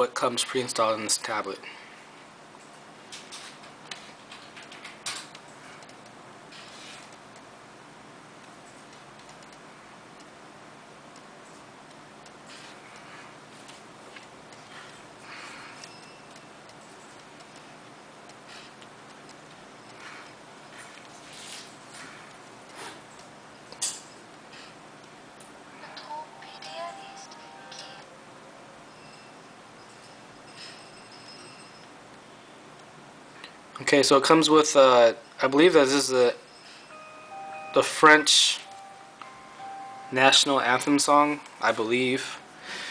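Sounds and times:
low steady hiss: 32.1s - 42.9s.

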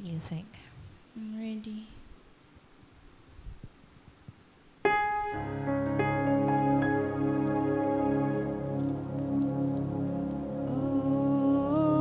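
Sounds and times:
keyboard chords with bass notes: 4.9s - 12.0s.

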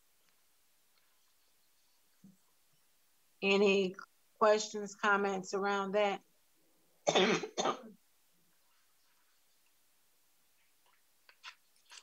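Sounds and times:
woman coughing: 7.1s - 8.0s.

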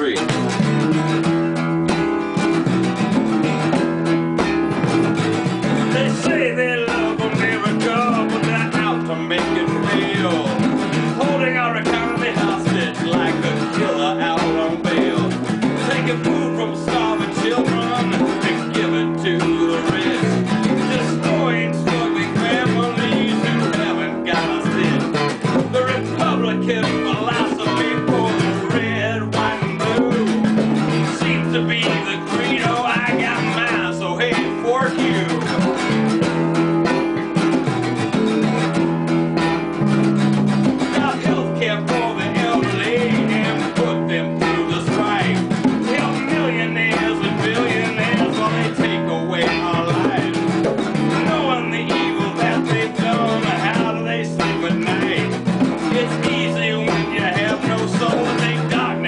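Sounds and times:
djembe hand drum: 0.0s - 59.0s
electric guitar: 0.0s - 59.0s
strummed acoustic guitar: 0.0s - 59.0s.

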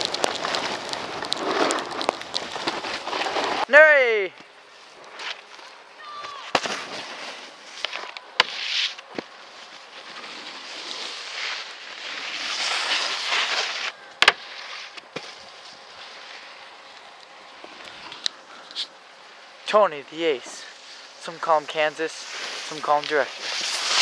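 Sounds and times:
snowboard scraping over snow: 0.0s - 3.9s, 5.1s - 16.8s, 19.6s - 24.0s.

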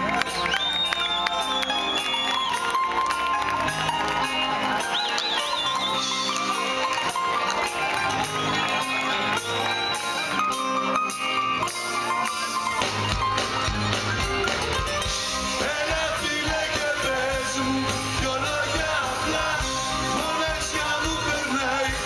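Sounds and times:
bass and drums: 0.0s - 22.0s
electric guitars: 0.0s - 22.0s
live band music through speakers: 0.0s - 22.0s.

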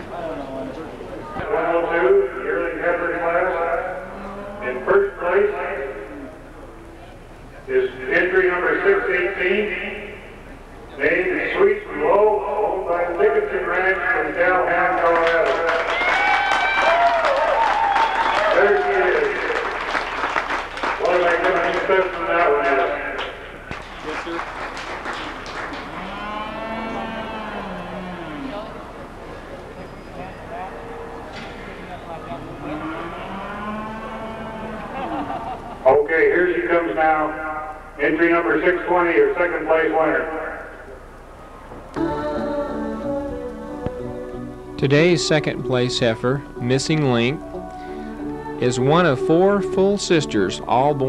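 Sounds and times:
man announcing over loudspeakers: 0.0s - 6.5s, 7.6s - 16.0s, 18.4s - 19.9s, 20.9s - 24.4s, 35.9s - 41.0s, 44.8s - 47.5s, 48.6s - 51.0s
cow mooing: 3.8s - 4.9s, 25.9s - 28.8s, 32.4s - 35.0s
crowd applauding: 14.8s - 26.2s.

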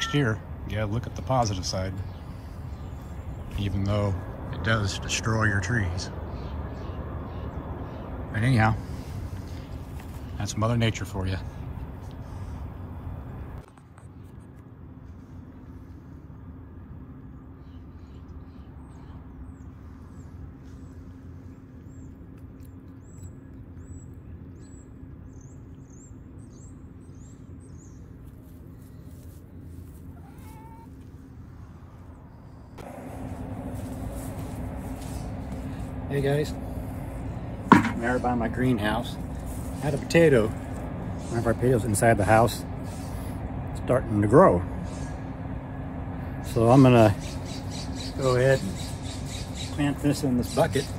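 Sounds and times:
cat meowing: 0.0s - 0.4s, 30.2s - 31.0s
low outdoor hum: 0.0s - 50.9s.

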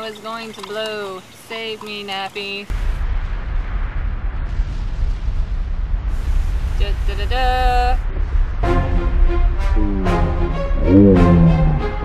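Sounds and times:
loud low rumble: 2.7s - 12.0s
hiss: 4.4s - 8.5s.

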